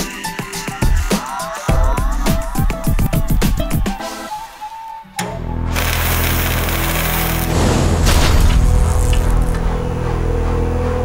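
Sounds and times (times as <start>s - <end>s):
music: 0.0s - 11.0s
hissing fizz: 5.8s - 7.8s.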